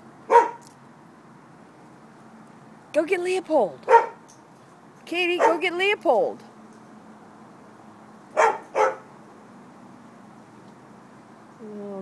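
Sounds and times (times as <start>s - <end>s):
dog barking: 0.3s - 0.6s, 3.9s - 4.2s, 5.4s - 5.6s, 8.4s - 9.1s.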